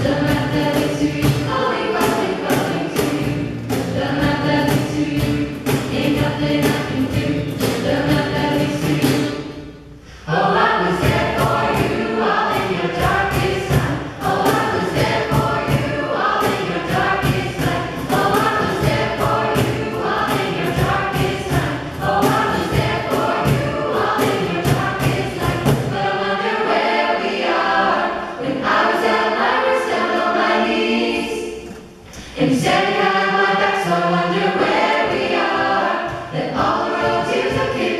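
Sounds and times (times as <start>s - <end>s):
choir singing through microphones: 0.0s - 37.9s
steady beat: 10.5s - 26.2s.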